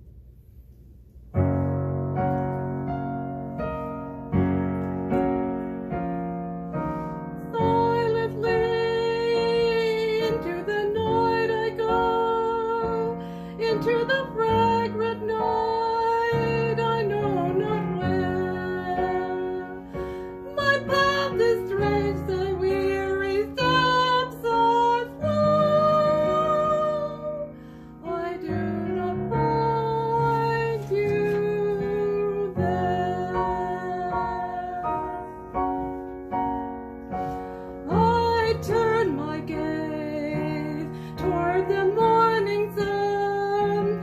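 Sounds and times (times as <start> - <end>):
piano accompaniment: 0.0 - 44.0
woman singing: 7.4 - 35.6, 37.8 - 44.0.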